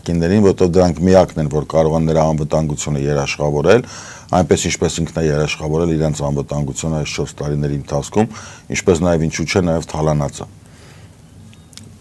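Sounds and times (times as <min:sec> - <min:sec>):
man talking: 0:00.0 - 0:10.6.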